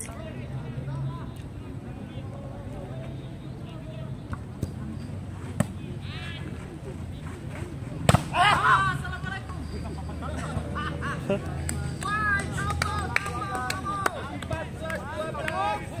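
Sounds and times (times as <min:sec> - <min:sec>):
murmur of voices: 0:00.0 - 0:16.0
players shouting: 0:08.1 - 0:09.5, 0:11.9 - 0:16.0.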